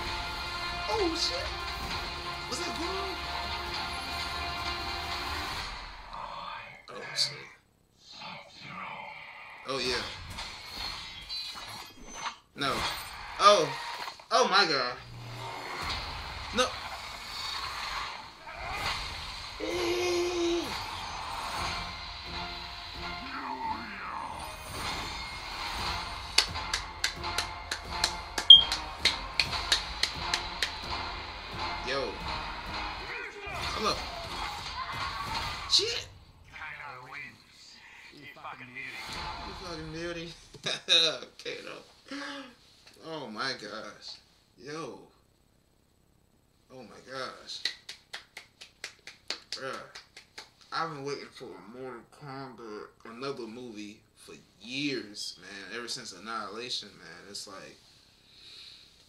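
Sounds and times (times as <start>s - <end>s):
dramatic trailer score: 0.0s - 6.4s, 20.6s - 36.6s, 38.9s - 40.3s.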